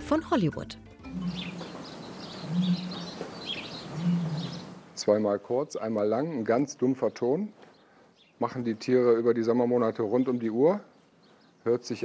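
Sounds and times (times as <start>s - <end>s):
ostrich booming call: 1.1s - 4.9s
small birds chirping: 1.1s - 12.0s.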